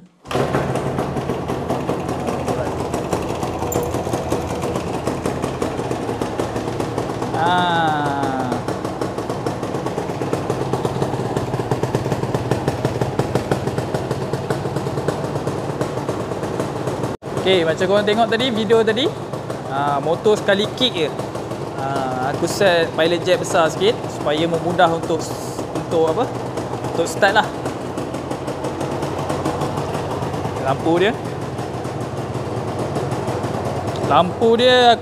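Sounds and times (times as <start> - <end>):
two-stroke engine kick-started: 0.0 - 35.0.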